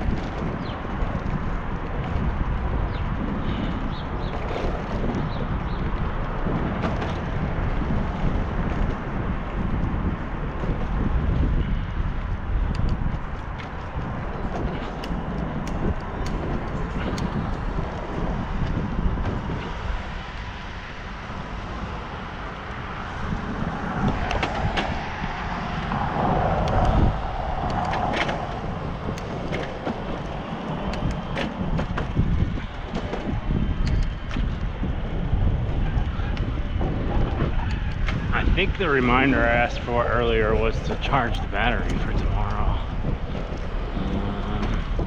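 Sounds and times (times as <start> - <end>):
road rumble: 0.0 - 45.0
wind buffeting microphone: 0.0 - 45.0.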